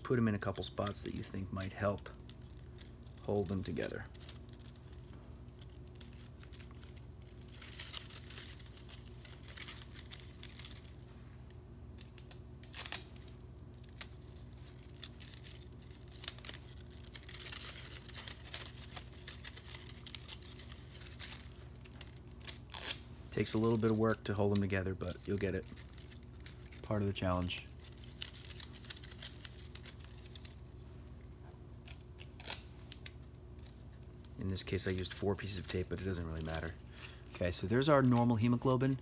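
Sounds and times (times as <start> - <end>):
folded paper rustling and crinkling: 5.6 - 11.0, 13.8 - 30.6.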